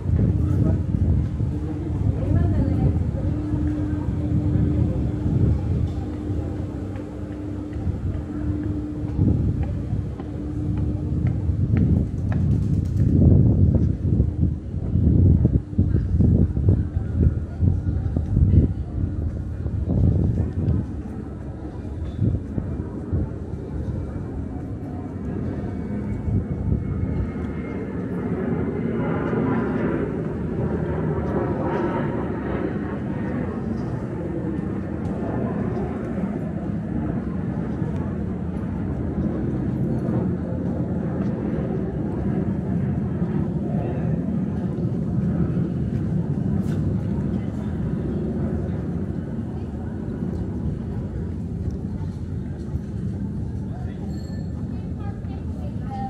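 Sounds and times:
steady low rumble: 0.0s - 56.0s
voices of people nearby: 0.0s - 56.0s.

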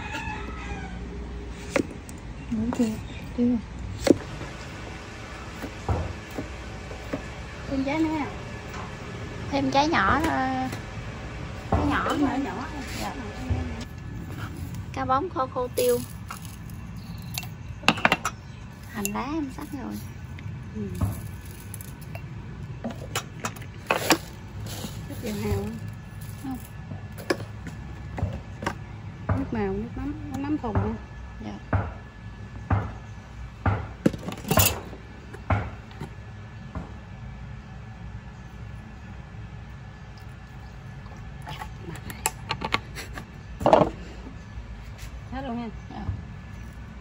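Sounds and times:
bottles knocking and clinking: 15.8s - 19.7s, 34.0s - 34.9s
glass jar clinking on metal counter: 34.3s - 34.8s.

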